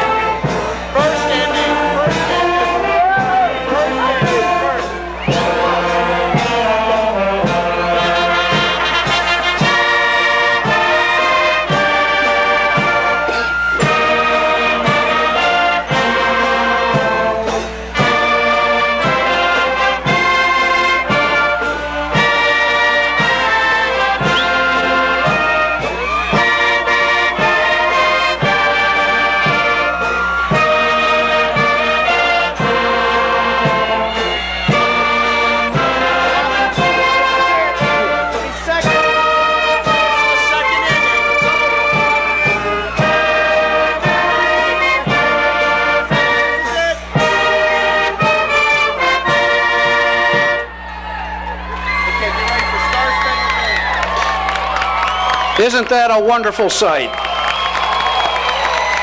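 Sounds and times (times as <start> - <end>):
brass band march music: 0.0 - 59.0.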